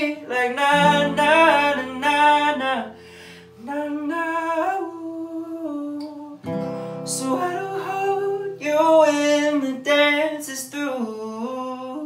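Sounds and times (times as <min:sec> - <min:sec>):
man singing long note: 0:00.0 - 0:02.9.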